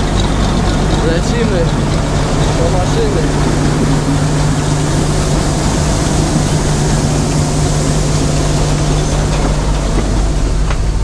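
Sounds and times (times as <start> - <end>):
combine harvester running: 0.0 - 11.0.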